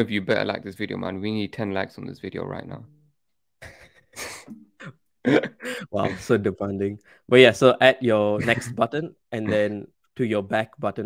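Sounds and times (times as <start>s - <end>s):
man laughing breathily: 3.6s - 6.3s
man chuckling: 3.6s - 6.4s, 8.4s - 8.8s.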